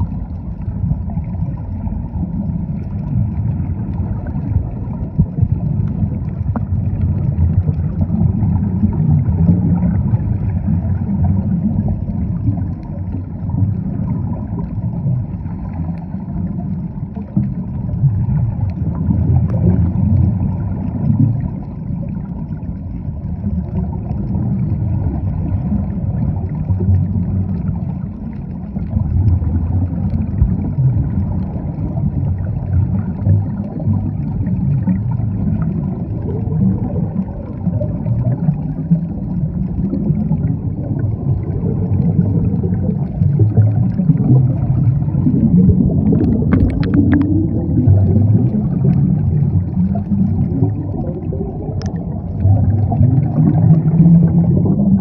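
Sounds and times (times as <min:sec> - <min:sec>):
underwater water rumble: 0:00.0 - 0:55.0.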